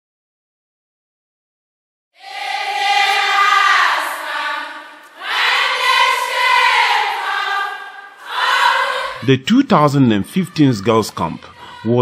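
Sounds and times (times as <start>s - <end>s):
girls choir singing: 2.2s - 12.0s.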